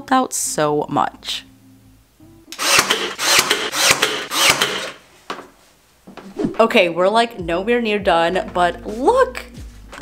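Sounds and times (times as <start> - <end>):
hand tool rasping wood: 2.6 - 5.0.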